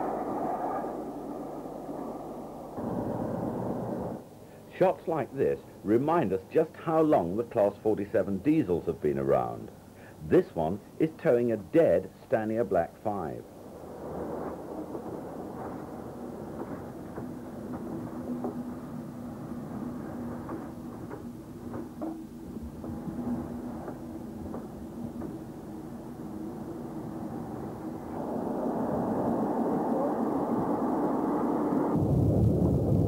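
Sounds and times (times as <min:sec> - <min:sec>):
deep rumble: 0:00.0 - 0:04.3, 0:26.3 - 0:33.0
train engine hum and rattle: 0:00.0 - 0:31.9.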